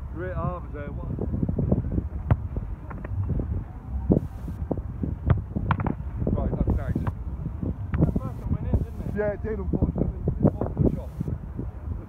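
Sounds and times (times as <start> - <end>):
wind rumbling on microphone: 0.0 - 12.0
football being struck: 2.2 - 2.5
faint voices: 3.6 - 4.7.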